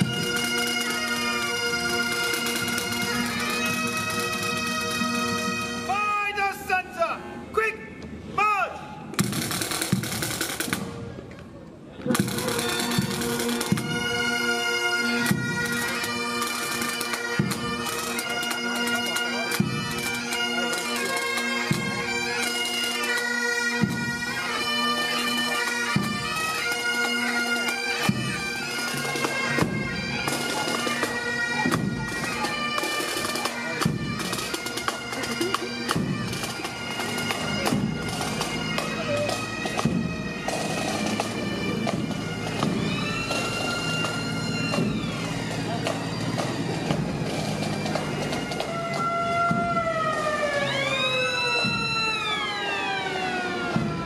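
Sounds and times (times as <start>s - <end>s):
bagpipes playing march: 0.0s - 7.5s, 9.2s - 11.0s, 12.1s - 54.0s
drum beats: 9.2s - 11.0s, 28.0s - 50.6s, 53.5s - 54.0s.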